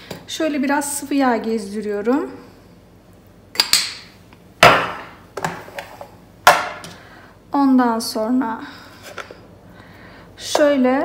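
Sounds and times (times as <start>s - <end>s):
kitchen items knocking on countertop: 4.6s - 5.8s, 6.5s - 6.9s.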